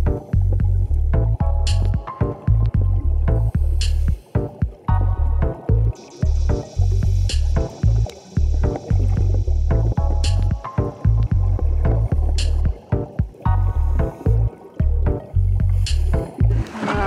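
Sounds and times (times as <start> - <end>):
music with pulsing bass beat: 0.0 - 17.0.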